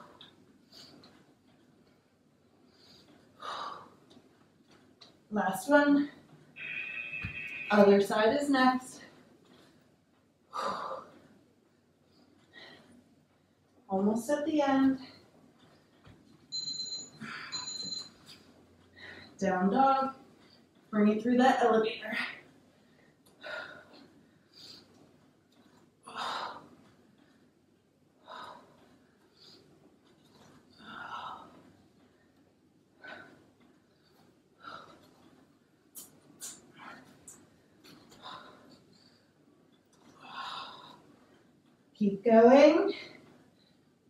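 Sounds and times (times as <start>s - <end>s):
timer beeping: 6.6s - 7.8s, 16.5s - 18.3s.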